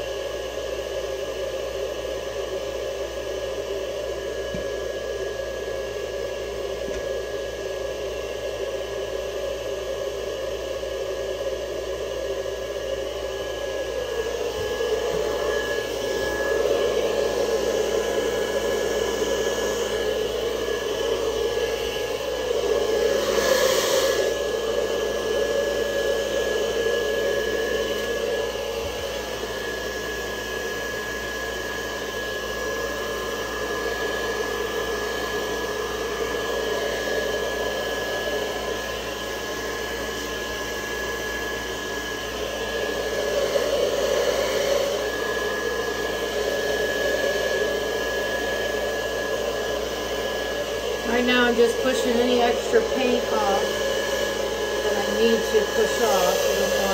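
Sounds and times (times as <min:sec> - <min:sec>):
heat gun blowing: 0:10.8 - 0:56.9.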